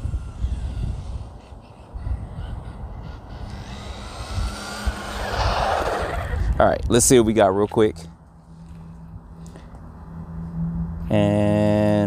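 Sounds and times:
toy car motor whine: 0.0 - 6.5.

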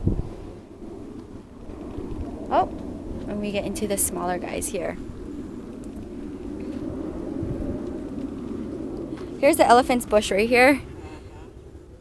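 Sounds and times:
low ragged rumbling: 0.0 - 12.0.

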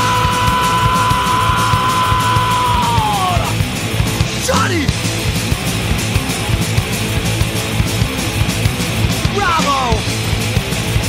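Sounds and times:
fast dense drumming: 0.0 - 11.0
punk rock band playing: 0.0 - 11.0.

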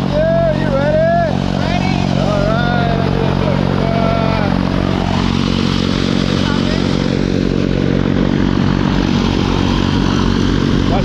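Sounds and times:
voices: 0.0 - 5.0, 6.2 - 7.3
propeller aircraft engine drone: 0.0 - 11.0.

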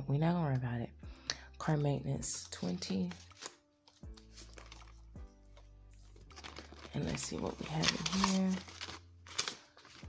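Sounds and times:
quiet music with plucked notes: 0.0 - 10.0
paper banknotes rustling: 2.5 - 10.0.

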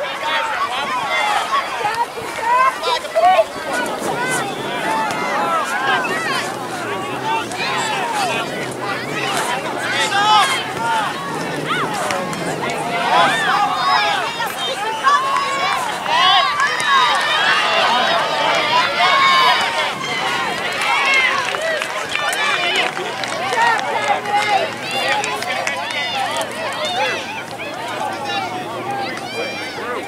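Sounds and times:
crowd shouting and calling: 0.0 - 30.0.

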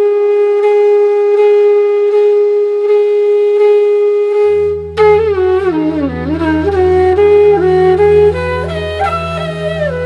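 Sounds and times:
wind instrument holding a long note: 0.0 - 10.0.

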